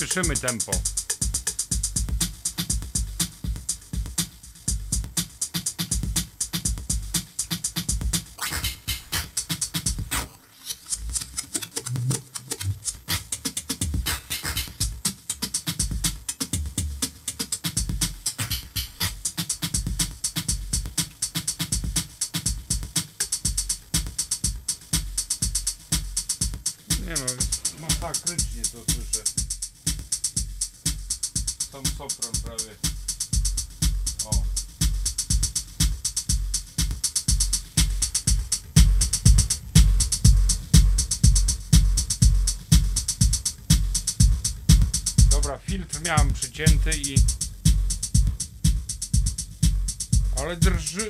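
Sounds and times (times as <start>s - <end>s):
drum machine beat: 0.0s - 51.0s.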